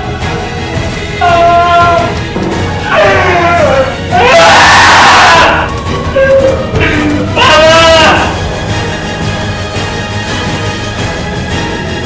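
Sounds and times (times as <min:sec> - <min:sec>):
music: 0:00.0 - 0:12.0
woman screaming: 0:02.8 - 0:06.6.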